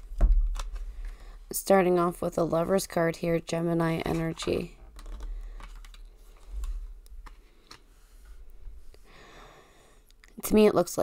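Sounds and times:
cards clicking and tapping: 0.1s - 1.2s, 4.0s - 7.9s.

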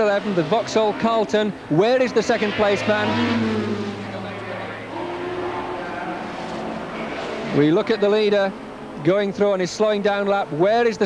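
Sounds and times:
racing car engines passing: 0.0s - 9.6s.

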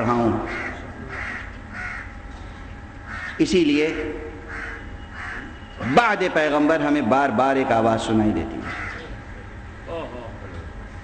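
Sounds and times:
steady low hum: 0.0s - 11.0s
bird calling: 0.4s - 6.0s, 8.6s - 9.2s.

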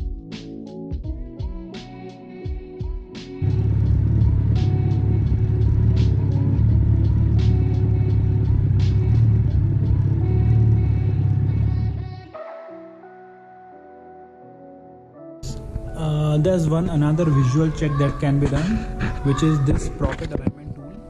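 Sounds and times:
background music: 0.0s - 21.0s
motorcycle engine rumbling: 3.4s - 12.2s.

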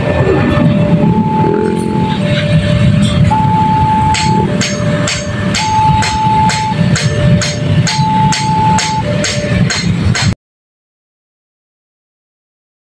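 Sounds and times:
two-tone electronic crossing alarm: 0.0s - 9.9s
motorbike engines running: 0.0s - 10.3s
sharp bell strikes: 4.0s - 10.4s.

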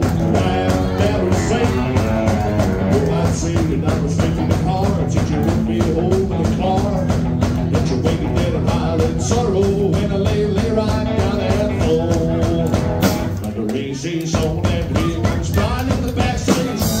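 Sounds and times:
drum kit: 0.0s - 17.0s
electric guitars: 0.0s - 17.0s
man singing: 0.0s - 17.0s.

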